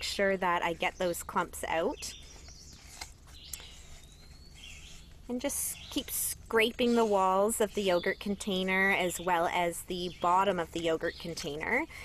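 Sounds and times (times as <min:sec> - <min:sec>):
soft bird chirps: 0:00.0 - 0:12.0.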